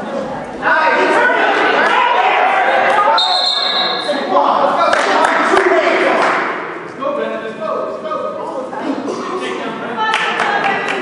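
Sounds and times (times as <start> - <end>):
spectators shouting: 0.6 - 4.0
referee's whistle: 3.1 - 4.2.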